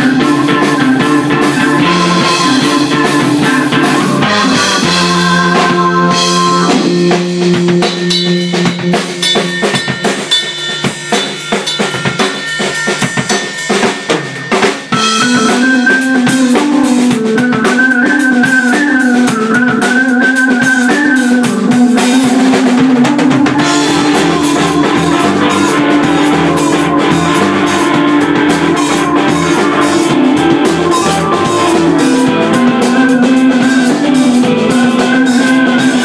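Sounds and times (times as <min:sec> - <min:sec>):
drum kit hits: 0:00.0 - 0:36.0
electric guitar: 0:00.0 - 0:36.0
keyboard: 0:00.0 - 0:36.0.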